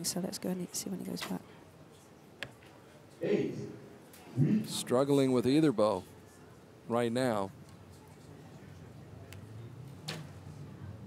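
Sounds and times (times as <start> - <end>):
quiet background noise: 0.0 - 11.0.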